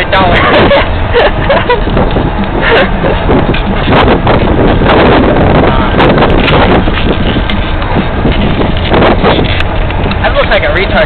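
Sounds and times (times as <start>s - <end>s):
car road noise: 0.0s - 11.0s
wind buffeting microphone: 0.0s - 11.0s.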